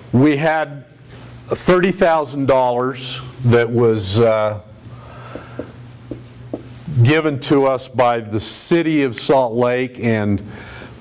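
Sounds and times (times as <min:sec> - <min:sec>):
marker writing on whiteboard: 0:05.3 - 0:06.7.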